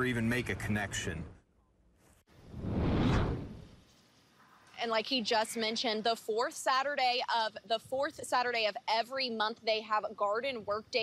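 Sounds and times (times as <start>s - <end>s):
whoosh transition effect: 2.5s - 3.7s.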